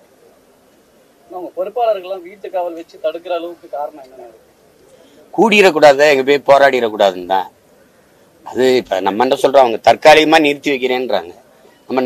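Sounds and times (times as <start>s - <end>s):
man speaking into microphones: 5.0s - 7.6s, 8.4s - 12.0s.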